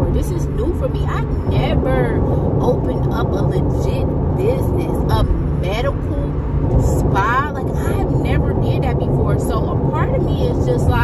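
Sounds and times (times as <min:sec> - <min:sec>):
car road noise from inside: 0:00.0 - 0:11.0
woman speaking and exclaiming: 0:00.0 - 0:11.0.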